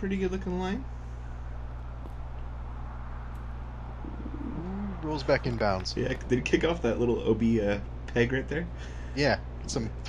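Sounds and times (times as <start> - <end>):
low electrical hum with hiss: 0.0 - 10.0
brief low rising and falling coo: 4.0 - 6.5.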